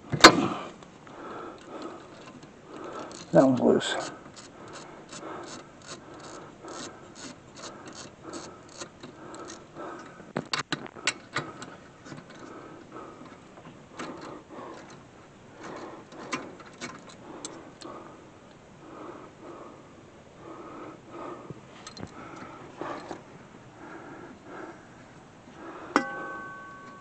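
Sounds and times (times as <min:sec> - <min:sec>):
ratchet wrench clicking: 0:03.0 - 0:03.4, 0:04.0 - 0:09.6.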